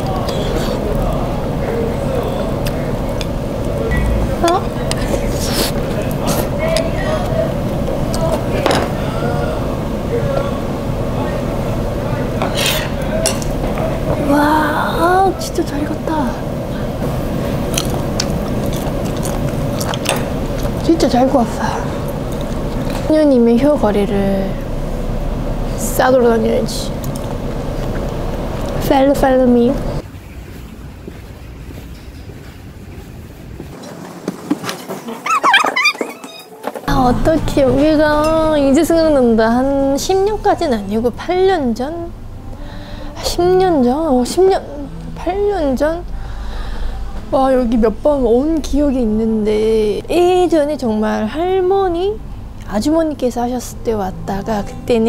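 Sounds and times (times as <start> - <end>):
faint background voices: 0.0 - 23.2
low room rumble: 0.0 - 33.8, 36.9 - 55.0
high wavering gliding sounds: 35.2 - 55.0.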